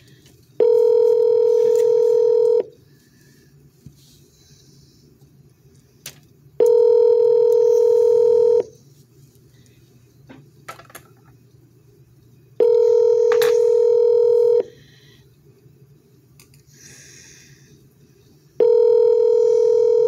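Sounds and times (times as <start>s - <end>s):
telephone ringback tone: 0.6s - 2.7s, 6.6s - 8.7s, 12.6s - 14.7s, 18.6s - 20.0s.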